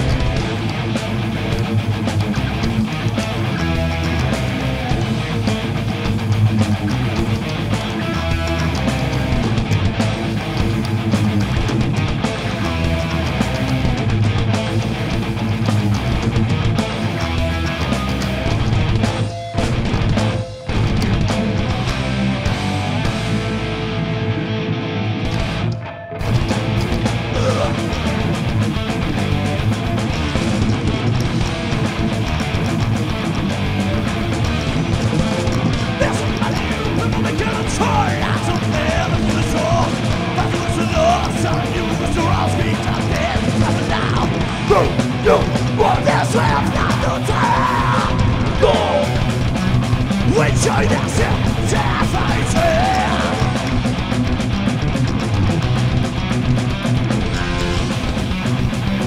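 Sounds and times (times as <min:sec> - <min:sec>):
heavy metal band playing: 0:00.0 - 0:59.0.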